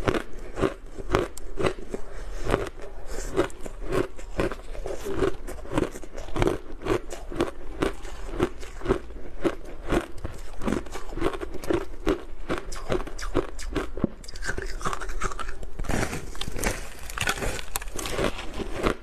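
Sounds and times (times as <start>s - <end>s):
chewing crunchy ice: 0.0s - 19.0s.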